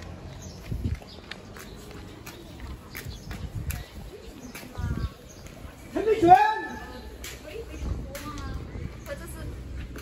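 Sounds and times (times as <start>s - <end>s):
footsteps on pavement: 0.0s - 10.0s
low rumble of street noise: 0.0s - 10.0s.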